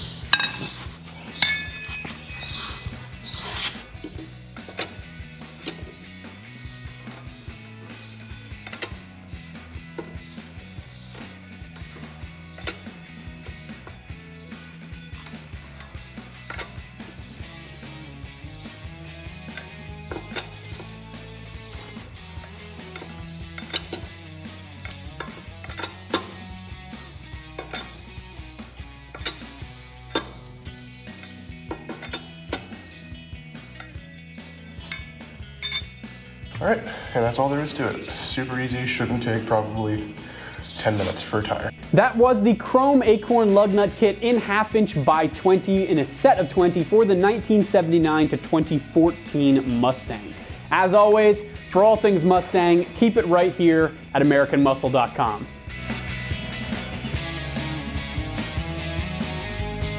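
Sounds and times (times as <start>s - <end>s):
background music with bass line: 0.0s - 59.9s
wrench clicking on lug nuts: 8.5s - 9.1s, 11.7s - 12.9s, 15.2s - 17.1s, 19.4s - 21.0s, 21.6s - 24.2s, 24.8s - 26.4s, 27.5s - 28.0s, 29.0s - 32.8s.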